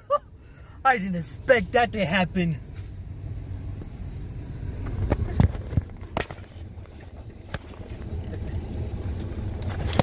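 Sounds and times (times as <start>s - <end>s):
car engine rumble inside cabin: 0.0s - 10.0s.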